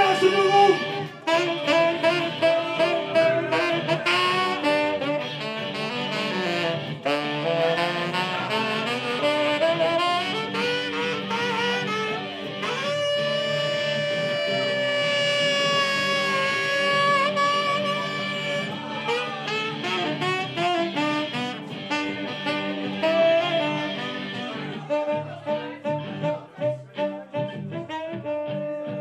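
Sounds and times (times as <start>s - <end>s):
electric guitar: 0.0s - 29.0s
tenor saxophone solo: 0.0s - 29.0s
drums: 0.9s - 25.0s.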